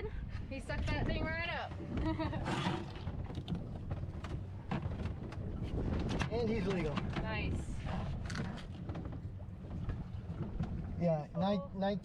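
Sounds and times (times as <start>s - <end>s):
wind and boat rumble: 0.0s - 12.0s.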